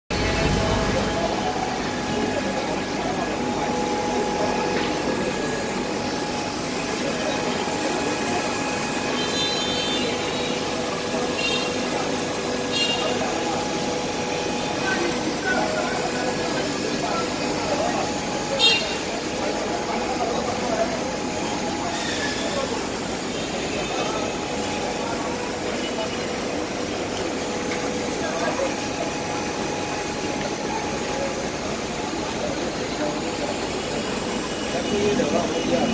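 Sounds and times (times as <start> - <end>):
mechanical hum: 0.1 - 35.9.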